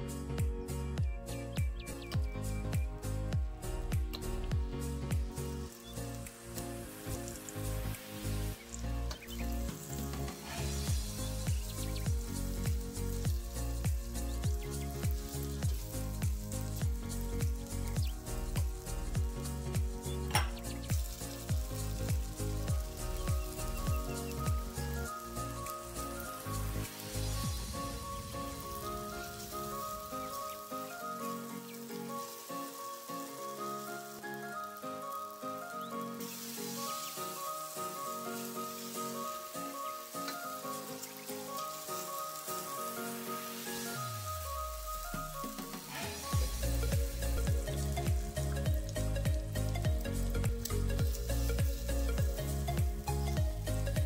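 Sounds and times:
background music with melody: 0.0 - 54.0
onion sizzling in a wok: 2.4 - 54.0.

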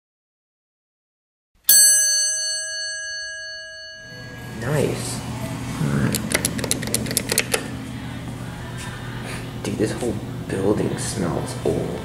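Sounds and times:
steady low hum: 2.4 - 12.0
elevator button clicks: 6.1 - 7.7.

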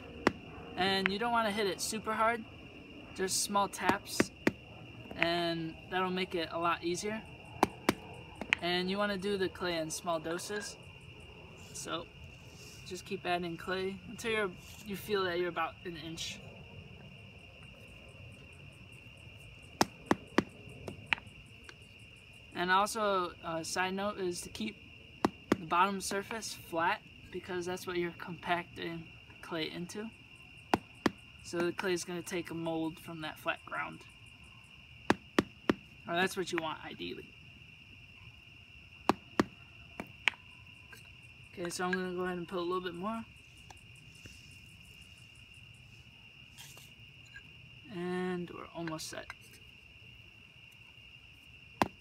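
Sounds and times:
crickets chirring: 0.0 - 52.0.

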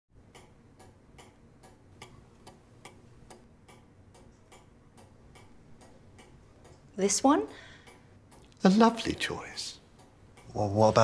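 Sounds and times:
clock ticking faintly: 0.2 - 11.0.

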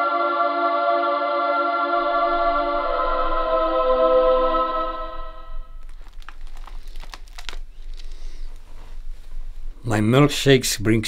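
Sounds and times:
book pages and cover rustling: 5.8 - 9.5.

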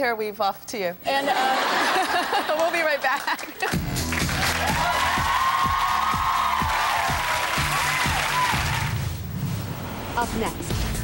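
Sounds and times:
studio audience applauding: 2.4 - 9.2
upbeat show music: 3.5 - 11.0.

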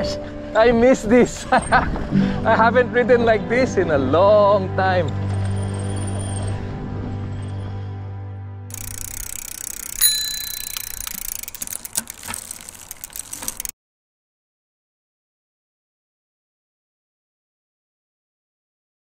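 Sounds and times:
background music: 0.0 - 10.3
bicycle bell ding: 8.7 - 11.7
scattered clicks: 8.7 - 13.7.

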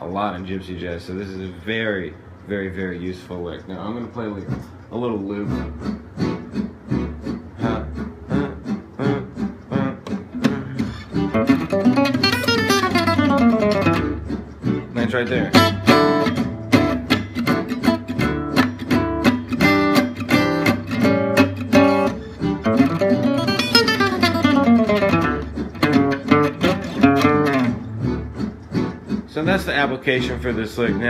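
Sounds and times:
picked acoustic guitar runs: 3.8 - 31.0.

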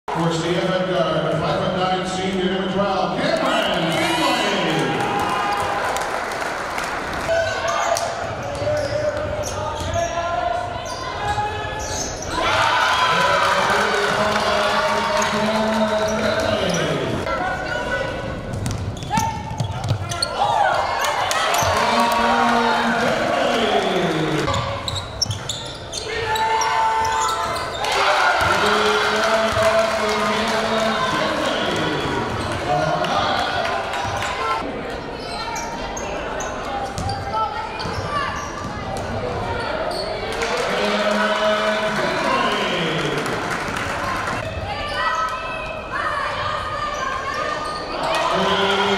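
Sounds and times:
echoing crowd voices: 0.1 - 48.9
sneaker squeaks: 7.5 - 12.4, 18.5 - 20.7, 24.5 - 27.9, 35.2 - 40.2, 46.9 - 48.2
basketball bouncing on wooden court: 18.5 - 20.2, 37.0 - 37.2.

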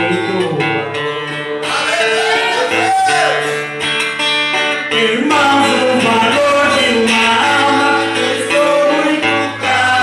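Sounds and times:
person singing: 0.0 - 3.7, 4.8 - 10.0
acoustic guitar strumming: 0.0 - 10.0.

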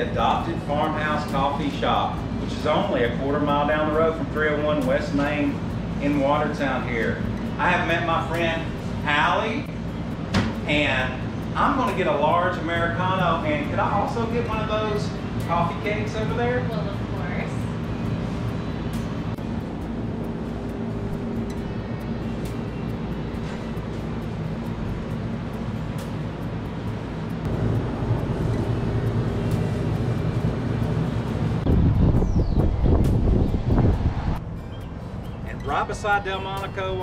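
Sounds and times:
low hum: 0.0 - 37.0
low rumbling noise: 0.0 - 37.0.

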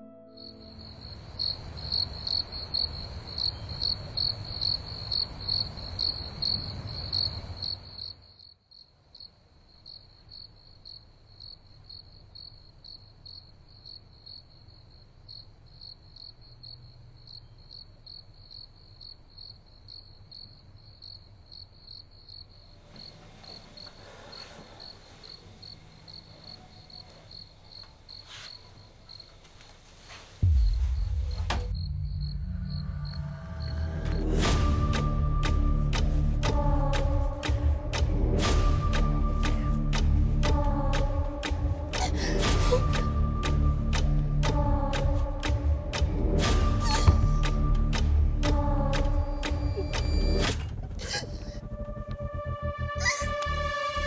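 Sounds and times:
crickets chirping: 0.4 - 29.6, 30.4 - 40.2.

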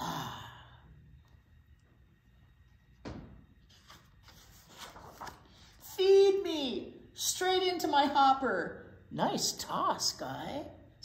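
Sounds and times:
paper page rustle: 3.7 - 5.8.

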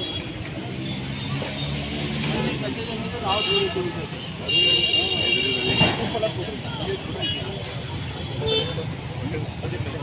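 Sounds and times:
group of people talking: 0.0 - 10.0.

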